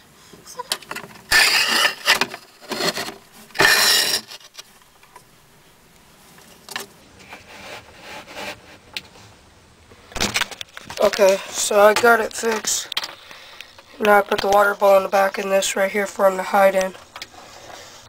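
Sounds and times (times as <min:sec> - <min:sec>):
slate scraping on slate: 0:01.2 - 0:04.8, 0:07.2 - 0:08.9.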